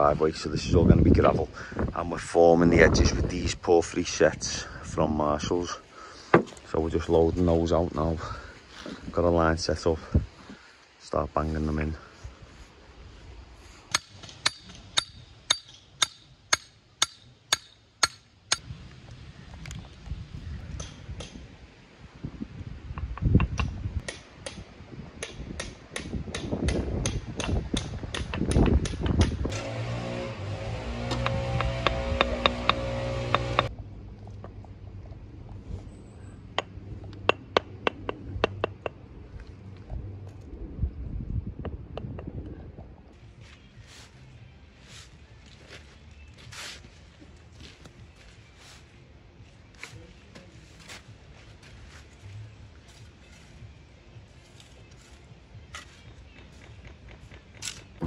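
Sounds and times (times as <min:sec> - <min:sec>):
hammer tapping stone setts: 0:13.9 - 0:18.2, 0:31.1 - 0:33.7, 0:37.3 - 0:39.0.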